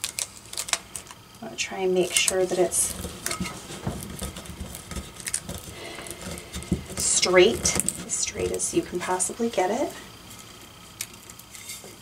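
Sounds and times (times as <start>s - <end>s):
paper rustling and rubbing: 2.1s - 8.6s.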